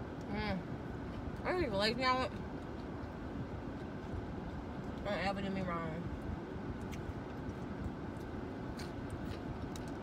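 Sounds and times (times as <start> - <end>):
car interior rumble: 0.0 - 10.0.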